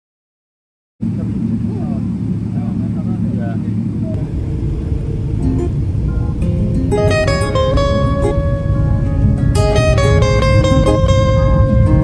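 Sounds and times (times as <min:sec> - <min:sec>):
faint voices: 0:01.0 - 0:09.4
airliner cabin rumble: 0:01.0 - 0:12.0
plucked guitar music: 0:04.1 - 0:12.0.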